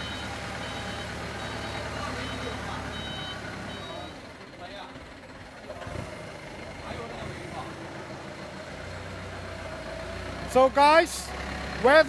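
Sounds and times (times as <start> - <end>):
forklift engine rumble: 0.0 - 12.0.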